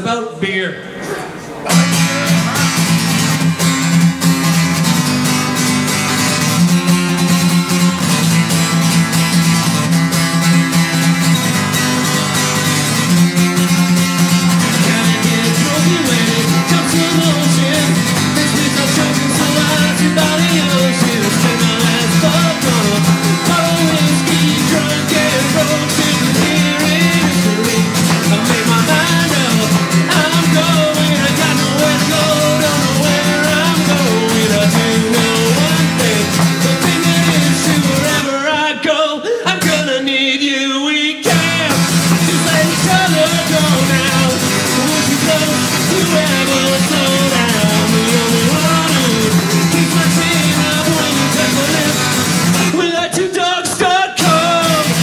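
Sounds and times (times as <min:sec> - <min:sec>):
acoustic guitar strumming: 0:00.8 - 0:55.0
man singing: 0:01.7 - 0:04.1, 0:12.0 - 0:55.0.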